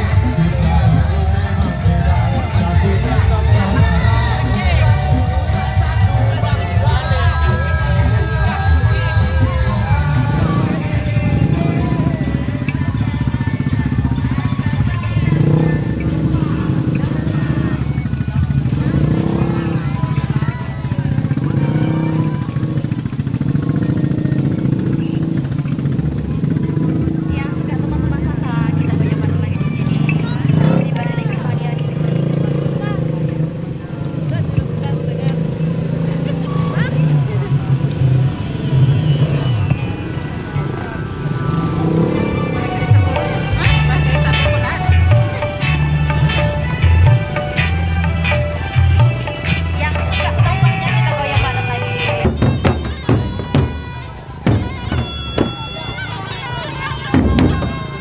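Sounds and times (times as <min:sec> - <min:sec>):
motorcycle engines: 0:00.0 - 0:58.0
people's voices: 0:00.0 - 0:58.0
procession music: 0:00.0 - 0:58.0.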